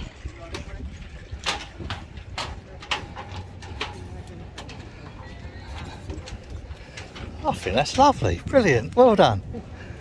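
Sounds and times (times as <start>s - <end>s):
footsteps on metal deck: 0.1s - 9.2s.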